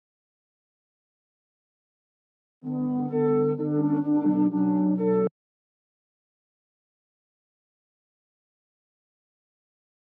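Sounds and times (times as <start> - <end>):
synthesizer held chords: 2.6 - 5.3.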